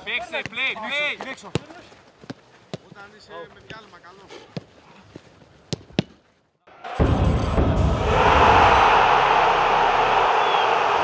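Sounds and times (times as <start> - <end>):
low boom: 7.0 - 10.1.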